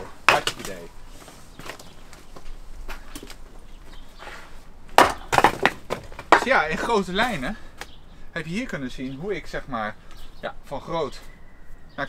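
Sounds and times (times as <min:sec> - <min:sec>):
axe chopping firewood: 0:00.0 - 0:00.9, 0:04.9 - 0:07.4.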